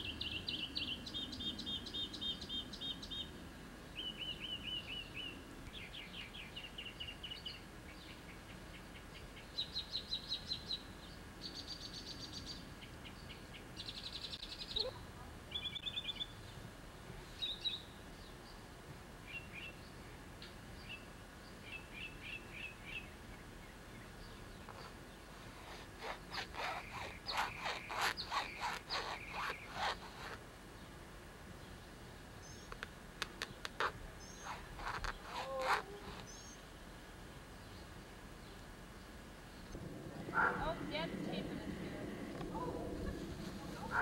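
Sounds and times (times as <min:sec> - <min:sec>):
songbirds singing: 0:00.0 - 0:14.9, 0:15.5 - 0:20.1, 0:20.7 - 0:44.0.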